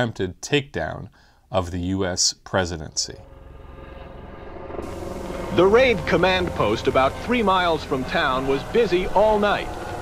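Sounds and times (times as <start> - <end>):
helicopter rotor beating: 3.2 - 10.0.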